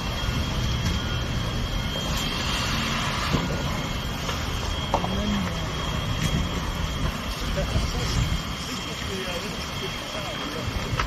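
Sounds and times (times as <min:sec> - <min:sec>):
large fire roaring: 0:00.0 - 0:11.0.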